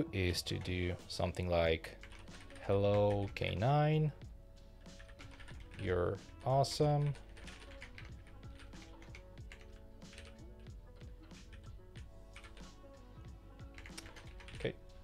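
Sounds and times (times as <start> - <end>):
quiet background music: 0.0 - 15.0
computer keyboard typing: 2.0 - 3.6, 4.8 - 11.7, 12.4 - 12.7, 13.7 - 14.7.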